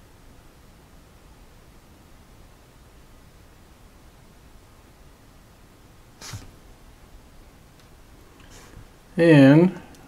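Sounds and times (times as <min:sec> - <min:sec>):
person snorting through nose: 0:06.2 - 0:06.5.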